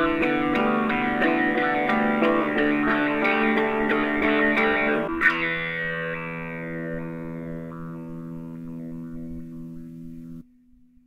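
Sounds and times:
electric guitar chord held: 0:00.0 - 0:10.5
faint guitar note ringing: 0:00.0 - 0:11.0.

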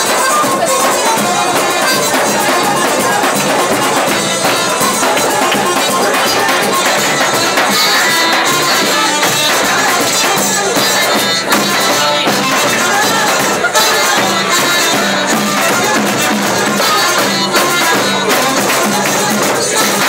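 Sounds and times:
drum kit: 0:00.0 - 0:20.0
flute: 0:00.0 - 0:20.0
violin: 0:00.0 - 0:20.0.

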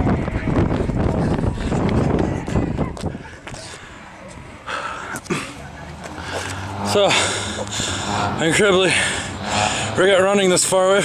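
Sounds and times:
man breathing hard: 0:01.2 - 0:08.3, 0:08.9 - 0:10.0.

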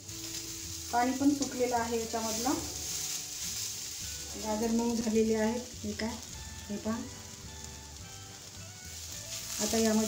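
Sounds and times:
wooden spatula stirring: 0:00.0 - 0:06.1, 0:08.4 - 0:10.0
carrots sizzling in fat: 0:00.0 - 0:10.0.

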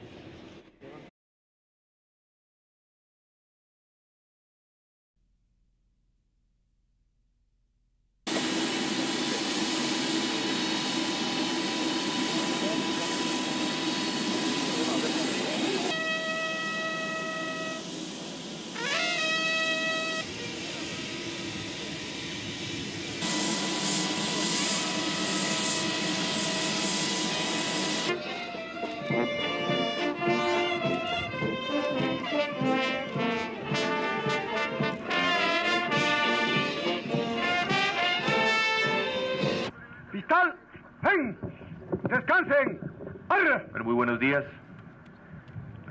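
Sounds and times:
military brass band playing: 0:15.8 - 0:20.3, 0:23.2 - 0:39.7.

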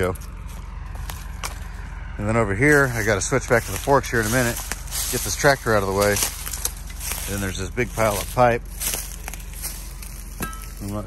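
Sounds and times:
footsteps through dry leaves: 0:00.0 - 0:11.0
steady low rumble: 0:00.0 - 0:11.0.

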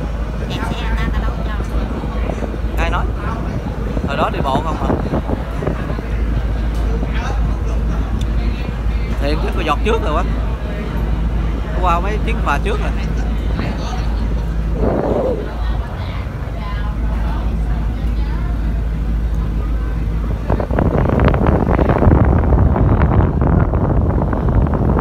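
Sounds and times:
ship engine drone: 0:00.0 - 0:04.4, 0:05.0 - 0:25.0
wind buffeting microphone: 0:00.0 - 0:08.8, 0:11.4 - 0:25.0
faint passenger chatter: 0:00.0 - 0:24.9.

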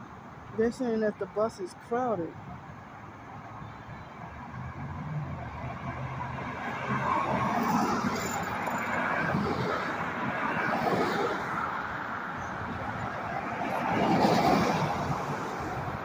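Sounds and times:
cars passing on road: 0:00.0 - 0:16.0.

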